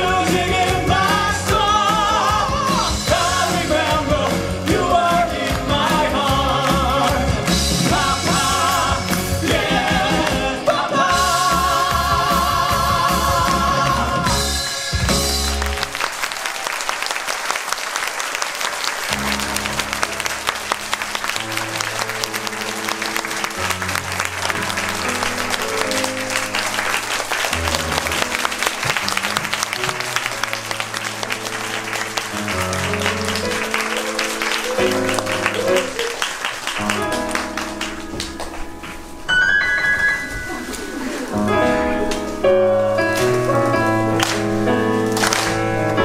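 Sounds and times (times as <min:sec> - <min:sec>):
instrumental music track: 0:00.0 - 0:16.1, 0:19.1 - 0:46.0
audience applauding: 0:00.0 - 0:39.1, 0:43.4 - 0:46.0.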